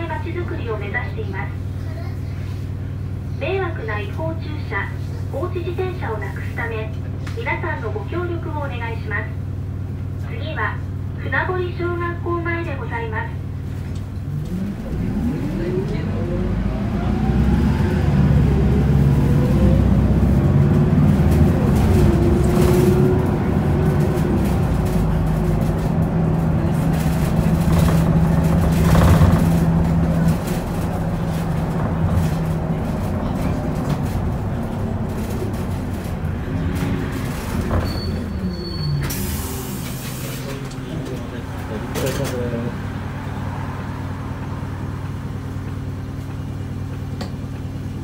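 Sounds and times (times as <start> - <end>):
bus diesel engine accelerating: 0.0 - 48.0.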